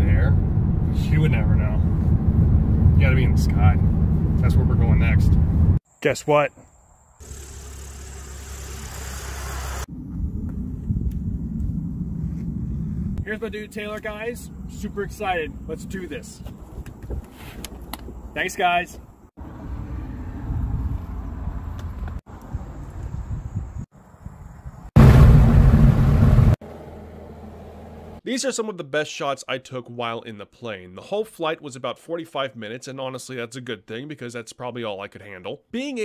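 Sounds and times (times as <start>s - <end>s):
light aircraft engine and propeller: 7.2s - 9.9s
low uneven rumble: 9.9s - 15.9s.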